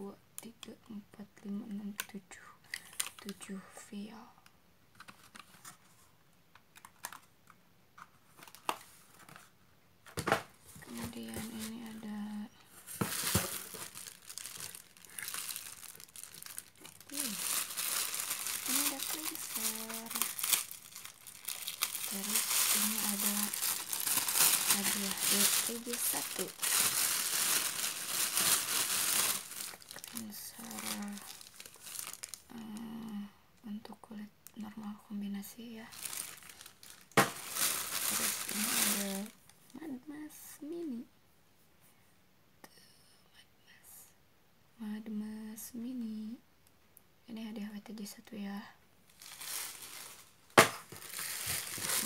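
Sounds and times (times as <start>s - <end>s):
plastic packing crinkling: 6.7s - 7.3s, 8.3s - 9.5s, 10.2s - 12.1s, 12.8s - 32.6s, 35.8s - 39.7s, 49.1s - 52.0s.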